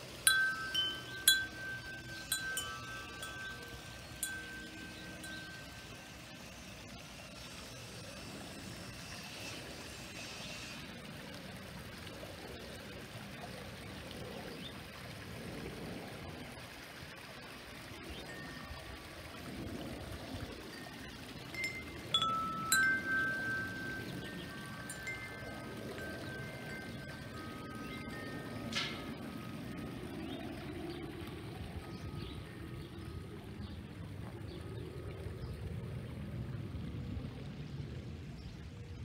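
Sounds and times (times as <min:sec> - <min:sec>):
metal wind chimes ringing: 0:00.0 - 0:06.5, 0:18.1 - 0:19.8, 0:20.7 - 0:30.7
waterfall splashing into pond: 0:00.0 - 0:38.8.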